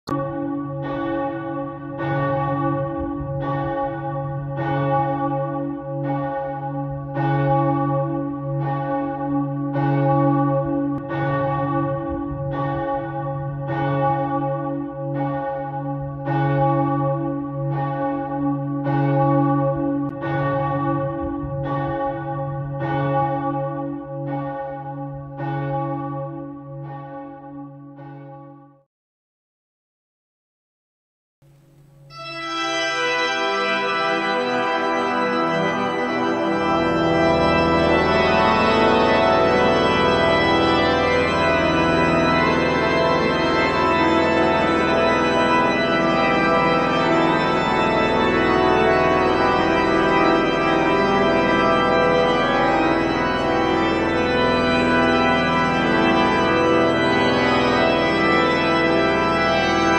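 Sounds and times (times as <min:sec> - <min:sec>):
church bells pealing: 0:00.1 - 0:28.5, 0:32.1 - 0:59.9.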